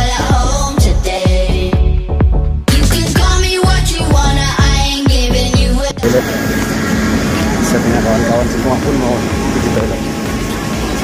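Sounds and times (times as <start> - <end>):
people talking: 6.0 - 6.4, 7.3 - 10.1.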